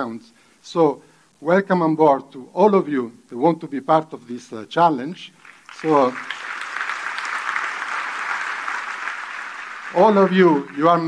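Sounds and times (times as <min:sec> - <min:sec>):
audience applauding: 0:05.4 - 0:11.0.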